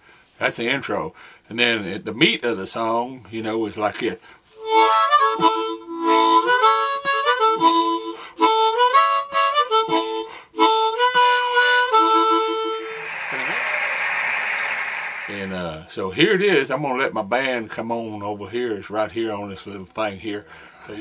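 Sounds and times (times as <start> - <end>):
breaths: 0.0 - 0.4, 1.1 - 1.5, 4.2 - 4.6, 8.1 - 8.4, 10.2 - 10.6, 20.4 - 21.0
harmonica playing chords: 4.6 - 13.1.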